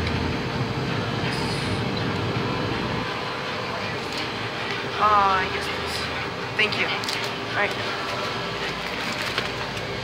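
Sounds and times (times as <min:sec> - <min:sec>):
indoor shop background noise: 0:00.0 - 0:10.0.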